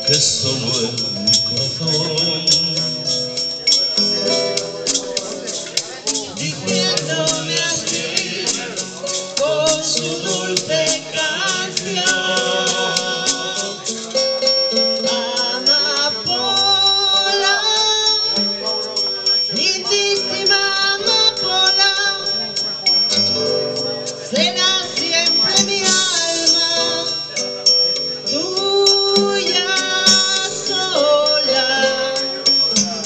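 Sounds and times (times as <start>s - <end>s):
acoustic guitar: 0.0s - 33.0s
woman singing: 6.3s - 13.9s, 14.9s - 18.7s, 19.5s - 22.8s, 24.3s - 27.4s, 28.3s - 32.9s.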